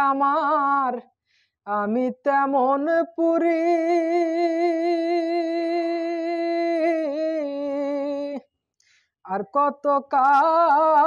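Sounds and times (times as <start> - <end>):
man singing unaccompanied: 9.3 - 11.0.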